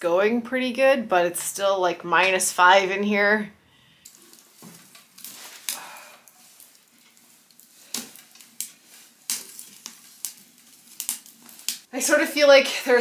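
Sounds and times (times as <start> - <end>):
wood fire crackling and popping: 4.0 - 13.0.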